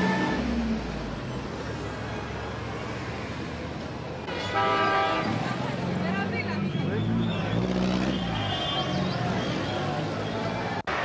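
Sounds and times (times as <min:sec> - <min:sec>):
car horn: 0:00.0 - 0:00.6, 0:04.3 - 0:05.5, 0:06.8 - 0:10.0
cars driving past: 0:00.0 - 0:11.0
crowd voices: 0:04.9 - 0:11.0.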